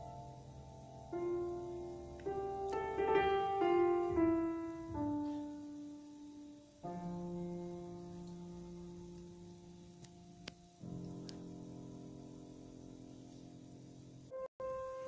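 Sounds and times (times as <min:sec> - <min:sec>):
grand piano chords: 0:00.0 - 0:15.0.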